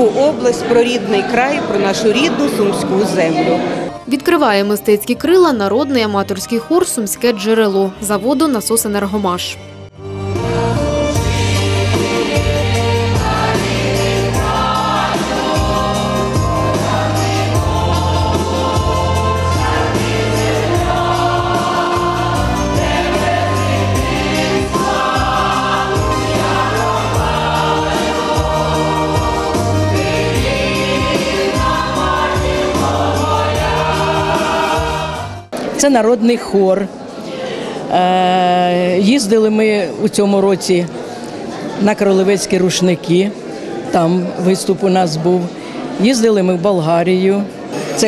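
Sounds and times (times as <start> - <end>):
mixed choir singing: 0.0 - 4.4, 10.3 - 35.5.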